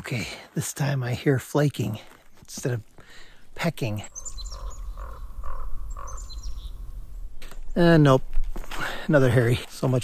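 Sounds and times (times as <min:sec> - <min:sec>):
short nasal bird notes: 0:03.9 - 0:07.7
thin high bird chirps: 0:03.9 - 0:07.8.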